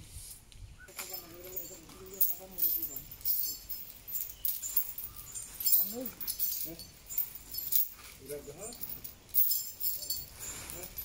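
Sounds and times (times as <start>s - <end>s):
metal chains clinking: 0.9s - 11.0s.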